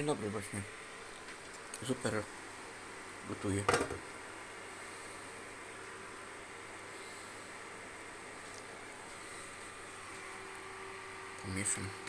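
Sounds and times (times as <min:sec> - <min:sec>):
soup boiling with hiss: 0:00.0 - 0:12.0.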